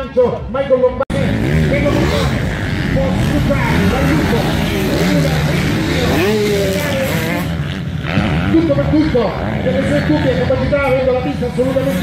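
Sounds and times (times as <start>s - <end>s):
motorbike engines revving: 0.0s - 12.0s.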